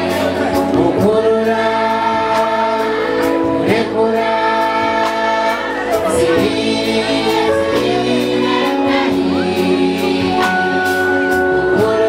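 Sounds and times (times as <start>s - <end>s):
bass guitar: 0.0s - 12.0s
children's choir singing: 0.0s - 12.0s
keyboard: 0.0s - 12.0s.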